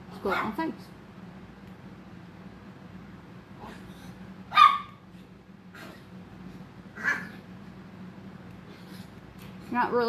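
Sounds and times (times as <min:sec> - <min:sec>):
steady low hum: 0:00.0 - 0:10.0
dog barking: 0:00.2 - 0:00.6, 0:04.5 - 0:05.0, 0:07.0 - 0:07.3.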